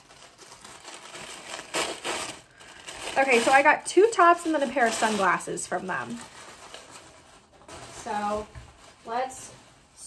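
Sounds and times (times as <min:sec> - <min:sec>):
packaging crinkling and rustling: 0:00.0 - 0:10.0.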